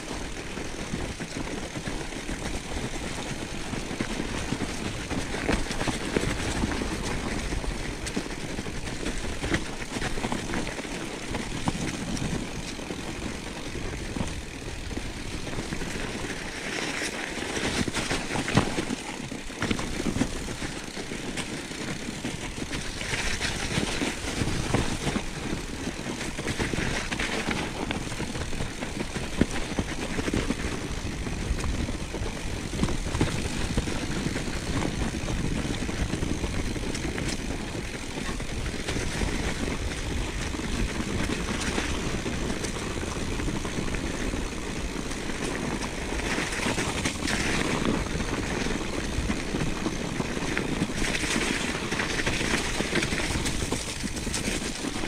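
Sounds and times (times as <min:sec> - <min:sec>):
bike tyres rumbling on snow: 0:00.0 - 0:55.0.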